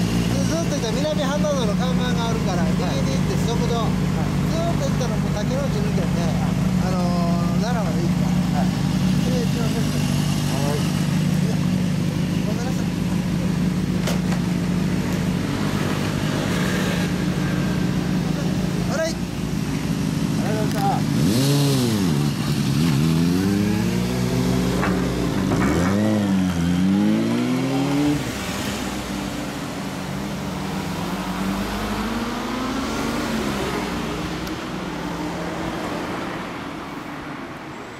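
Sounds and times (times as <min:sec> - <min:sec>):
motorcycle engine idling and revving: 0:00.0 - 0:37.9.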